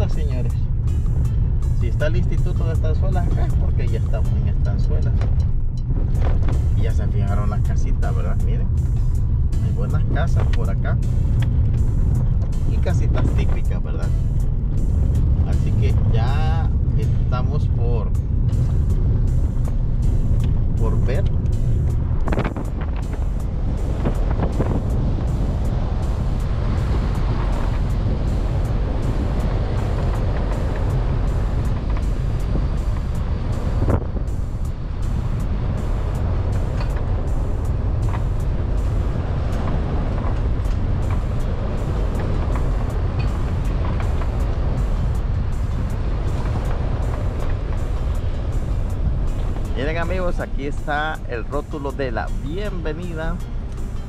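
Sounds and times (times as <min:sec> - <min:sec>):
car engine rumble: 0:00.0 - 0:54.0
tyres on paved road: 0:00.0 - 0:54.0.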